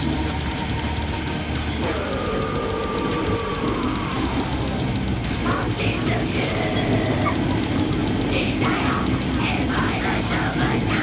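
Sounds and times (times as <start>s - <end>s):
train rumbling on rails: 0.0s - 11.0s.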